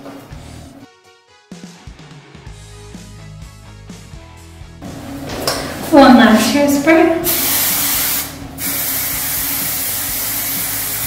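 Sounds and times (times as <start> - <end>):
aerosol can spraying: 7.2 - 11.0.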